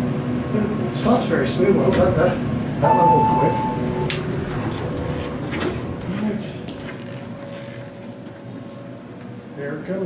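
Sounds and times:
steady low hum: 0:00.0 - 0:10.0
footsteps on stone floor: 0:05.2 - 0:08.4.

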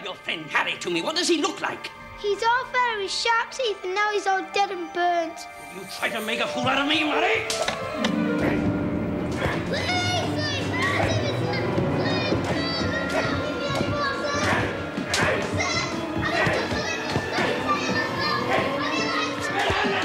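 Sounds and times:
background music: 0:00.0 - 0:20.0
cane smacks: 0:12.4 - 0:15.6.

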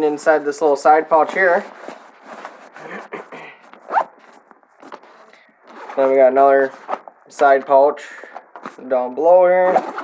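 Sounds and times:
zipper being pulled open: 0:03.7 - 0:06.1.

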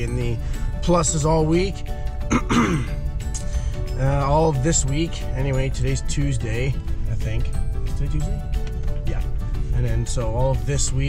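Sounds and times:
truck cabin rumble: 0:00.0 - 0:11.0
man clearing throat: 0:02.3 - 0:03.0.

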